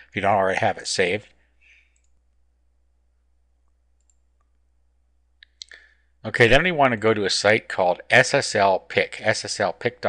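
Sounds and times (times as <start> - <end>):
computer mouse clicks: 1.9 - 2.2, 3.6 - 4.6.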